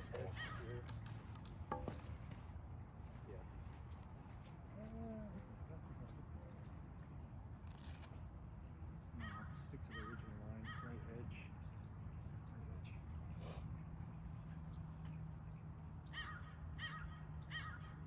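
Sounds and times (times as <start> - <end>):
birds calling: 0.0 - 18.0.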